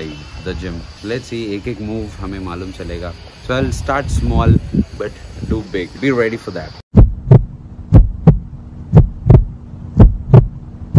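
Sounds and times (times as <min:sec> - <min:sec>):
steady low hum: 0:06.7 - 0:10.9
heartbeat thumps: 0:06.9 - 0:10.9.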